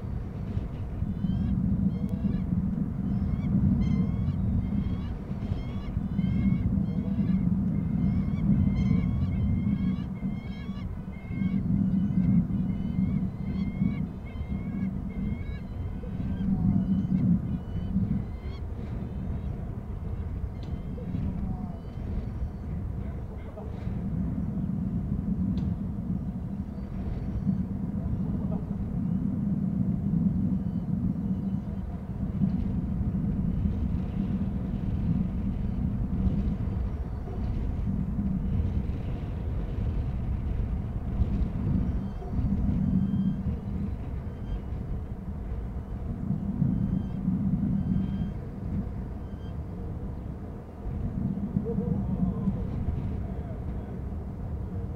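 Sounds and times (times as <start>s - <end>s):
low rumbling background noise: 0.0s - 54.9s.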